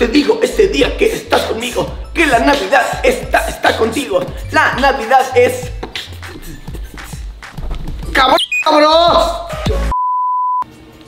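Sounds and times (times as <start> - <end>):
censor bleep: 8.4 - 8.8, 9.9 - 10.7.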